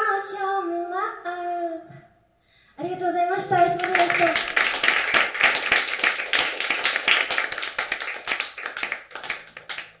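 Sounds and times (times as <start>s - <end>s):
small audience applauding: 3.6s - 10.0s.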